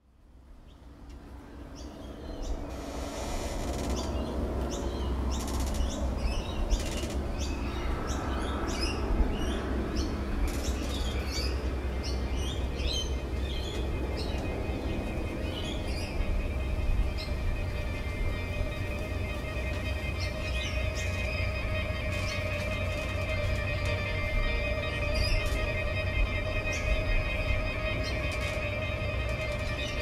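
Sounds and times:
low steady drone: 0:00.0 - 0:30.0.

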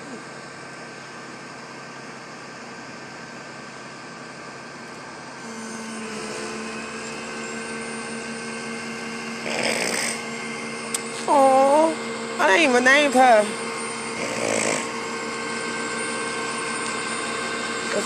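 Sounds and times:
hydraulic pump whine: 0:00.0 - 0:18.0
truck engine running: 0:00.0 - 0:18.0
person's voice: 0:11.2 - 0:13.6.

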